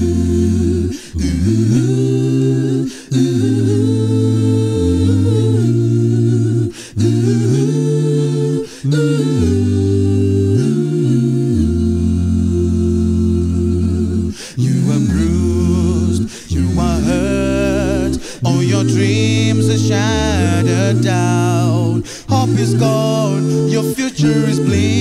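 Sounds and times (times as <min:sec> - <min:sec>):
vocal group singing chords: 0:00.0 - 0:25.0
singers breathing: 0:00.9 - 0:01.2, 0:02.8 - 0:03.2, 0:06.7 - 0:07.0, 0:08.6 - 0:08.9, 0:14.3 - 0:14.6, 0:16.2 - 0:16.5, 0:18.1 - 0:18.5, 0:22.0 - 0:22.4
deep bass voice: 0:14.6 - 0:24.0.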